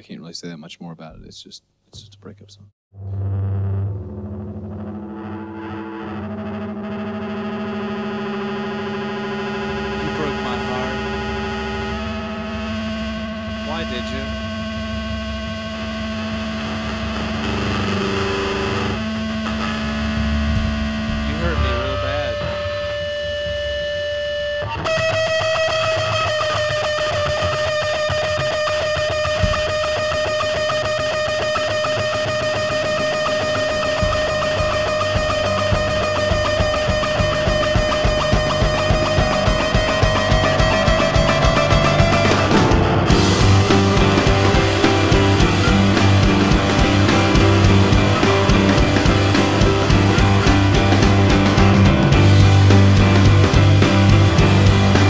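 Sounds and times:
distorted rock instrumental: 2.9s - 55.0s
steady drum beat: 10.0s - 23.9s, 24.9s - 55.0s.

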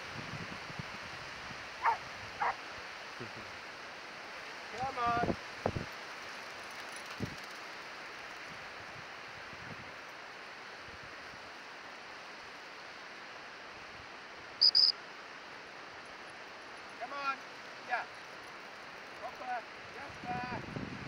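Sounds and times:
wind: 0.0s - 21.0s
short high-pitched pips: 14.6s - 14.9s.

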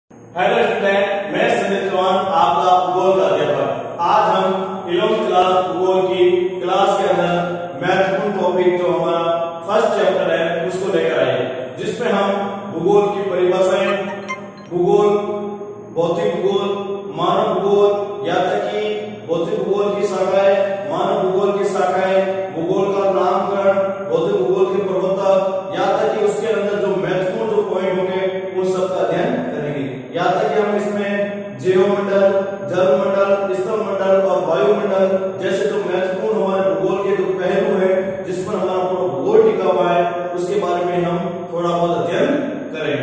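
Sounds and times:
mantra chanting: 11.9s - 15.3s.

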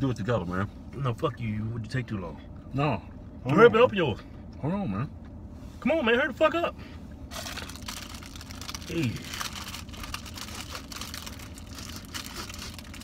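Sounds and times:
wrapper crinkling and tearing: 7.3s - 13.0s.

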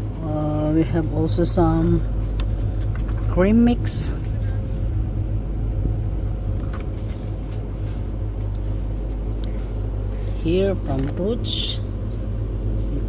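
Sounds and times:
refrigerated display cases humming: 0.0s - 13.0s.

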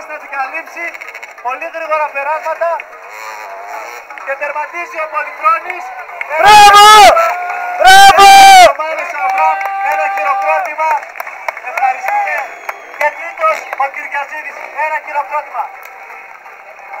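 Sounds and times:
crowd chatter: 0.0s - 17.0s.

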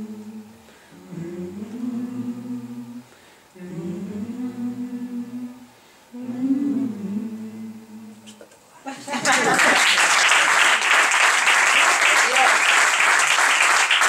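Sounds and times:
low voices humming: 0.0s - 8.4s.

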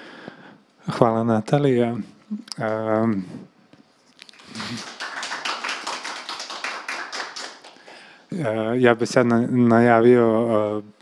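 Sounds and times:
audience applause: 4.4s - 8.1s.

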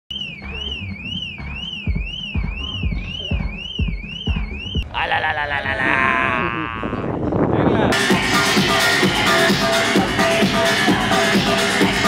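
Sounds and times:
siren wailing: 0.1s - 7.0s
dance music kick drum: 0.4s - 4.8s.

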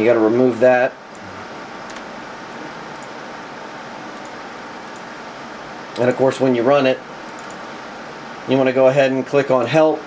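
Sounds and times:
fan-like hiss: 0.0s - 10.0s
faint clicks: 7.3s - 7.6s.

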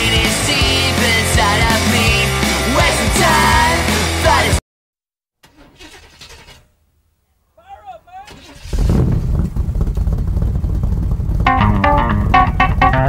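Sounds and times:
car engine starting and running: 5.4s - 7.1s, 8.2s - 13.0s.

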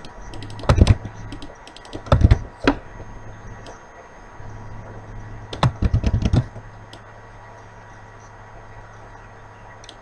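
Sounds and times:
computer keyboard keystrokes: 0.0s - 2.5s, 5.5s - 7.0s
steady low hum: 0.0s - 10.0s.

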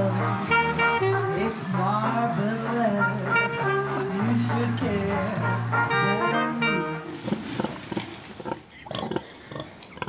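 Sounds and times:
pigs grunting: 7.2s - 10.0s.

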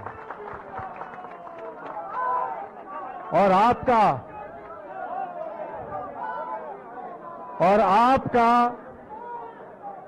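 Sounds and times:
close speech: 0.0s - 10.0s.

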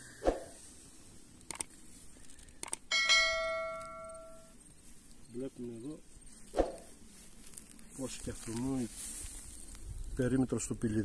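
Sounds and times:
short clicks: 1.4s - 1.8s, 2.5s - 2.9s
bell chime: 2.9s - 4.5s.

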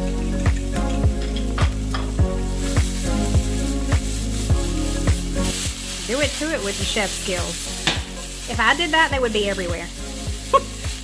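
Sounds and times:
music with steady beat: 0.0s - 11.0s
sausage sizzling in a skillet: 0.0s - 11.0s.

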